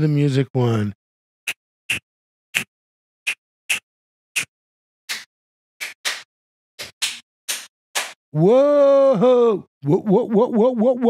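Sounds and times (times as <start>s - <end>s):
hand claps: 5.1s - 8.2s.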